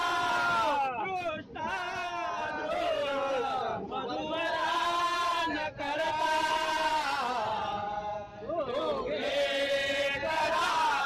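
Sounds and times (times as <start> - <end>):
voices chanting: 0.0 - 11.0.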